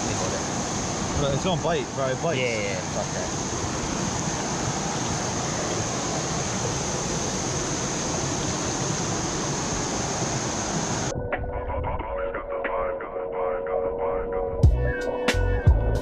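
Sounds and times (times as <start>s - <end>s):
waterfall and creek water rushing: 0.0s - 11.1s
music with sustained tones: 11.1s - 16.0s.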